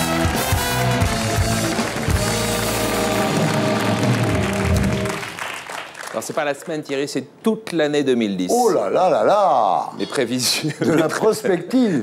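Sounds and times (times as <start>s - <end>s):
band music with drum beat: 0.0s - 5.2s
studio audience applause: 0.0s - 6.8s.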